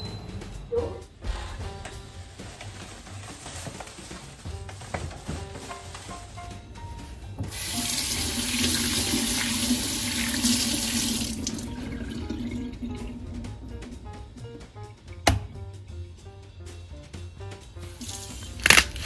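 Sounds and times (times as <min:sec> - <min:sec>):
tap water running into sink: 0:07.4 - 0:14.4, 0:18.0 - 0:18.8.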